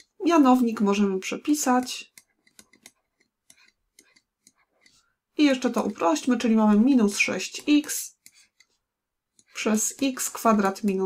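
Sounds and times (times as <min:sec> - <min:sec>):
stylus scratching on drawing tablet: 0:00.0 - 0:11.0.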